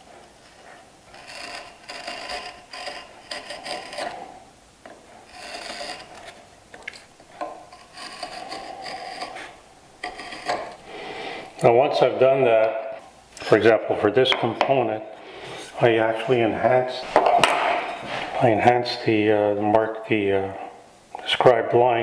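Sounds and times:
knife scoring wood: 0:00.4 - 0:11.7.

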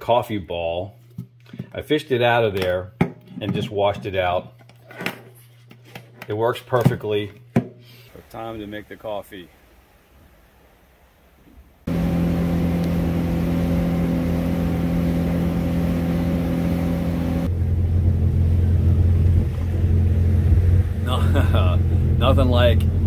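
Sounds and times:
boat engine running: 0:11.9 - 0:23.0.

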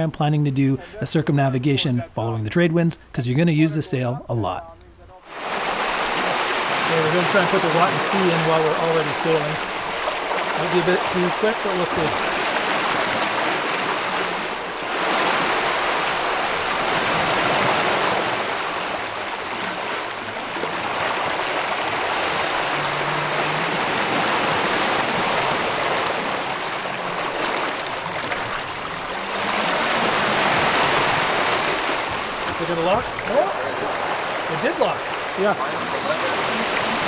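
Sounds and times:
water rushing in boat wake: 0:05.2 - 0:37.0.

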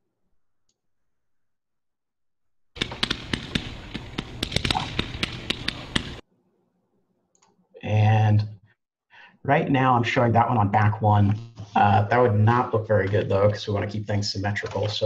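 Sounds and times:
firework shots: 0:02.8 - 0:06.2.

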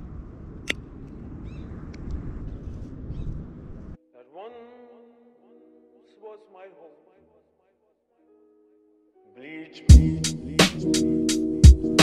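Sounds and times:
wind rumbling on microphone: 0:00.0 - 0:04.0
sharp click: 0:00.6 - 0:00.8.

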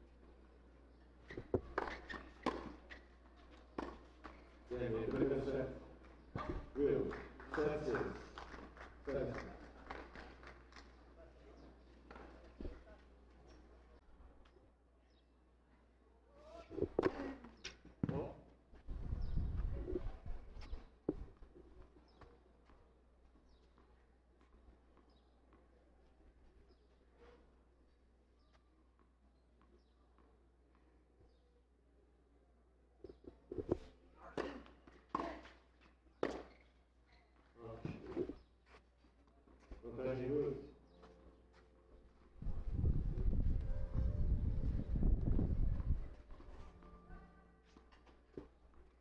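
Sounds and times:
racquet striking tennis ball: 0:01.5 - 0:03.1, 0:36.2 - 0:36.6.

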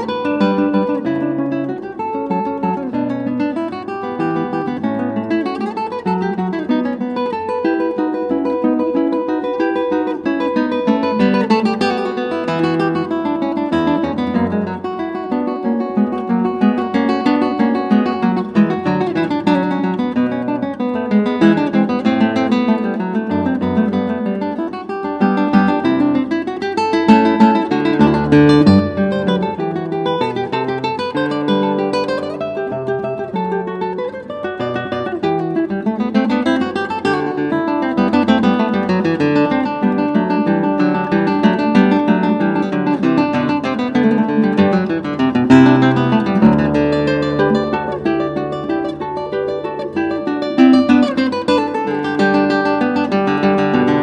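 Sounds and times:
acoustic guitar playing: 0:00.0 - 0:54.0.

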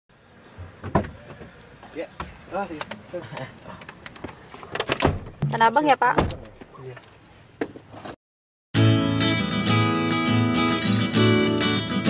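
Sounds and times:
low car cabin noise: 0:00.1 - 0:08.2.

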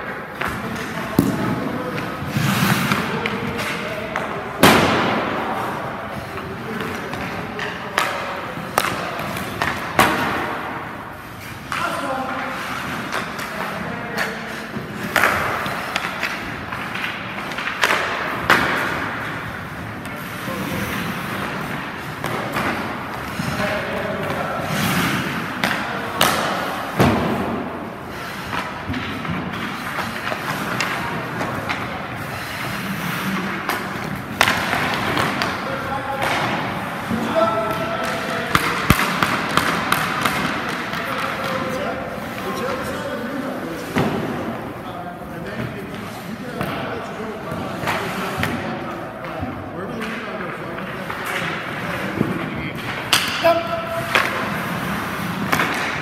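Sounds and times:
ice skates scraping: 0:00.0 - 0:49.3, 0:49.9 - 0:56.0
indistinct voices echoing: 0:00.0 - 0:56.0
stick and puck clacks: 0:00.0 - 0:56.0
sharp crack of hockey shot: 0:01.1 - 0:03.1, 0:04.6 - 0:05.7, 0:37.7 - 0:41.6.

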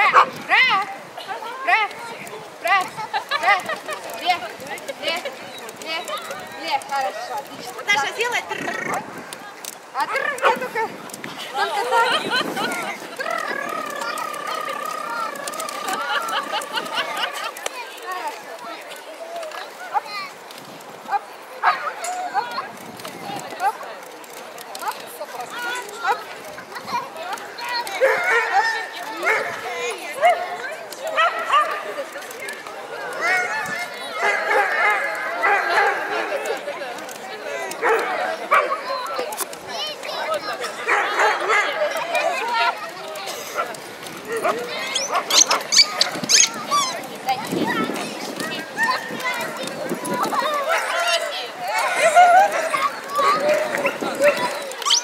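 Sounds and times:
dogs barking: 0:00.0 - 0:00.4, 0:28.0 - 0:29.6, 0:31.1 - 0:31.9, 0:34.2 - 0:36.3, 0:40.8 - 0:41.9, 0:44.4 - 0:46.9, 0:51.9 - 0:55.0
crowd chattering: 0:00.0 - 0:55.0
voices: 0:00.0 - 0:55.0
dog barking and yipping: 0:44.9 - 0:46.9, 0:53.8 - 0:55.0.

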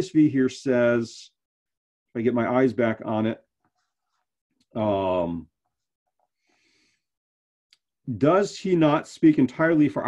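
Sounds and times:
faint breath: 0:06.4 - 0:07.2.

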